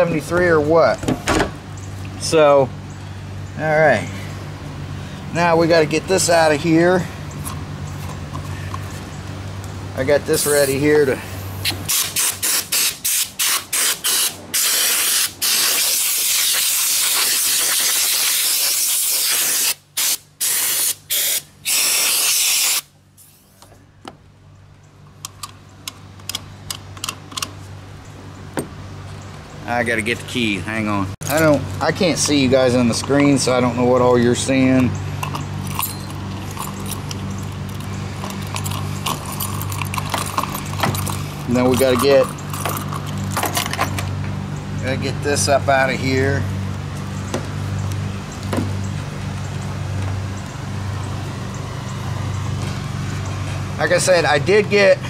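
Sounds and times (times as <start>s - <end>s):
steady low hum: 0.0s - 16.1s, 22.8s - 55.0s
compressed air blow gun blasting: 11.4s - 23.6s
light clicks and rattles: 34.2s - 44.3s.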